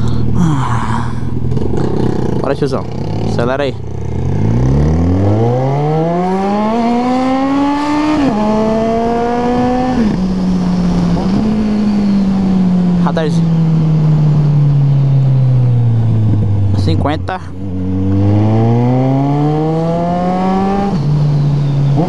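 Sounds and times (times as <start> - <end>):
motorcycle engine revving: 1.3 - 22.0.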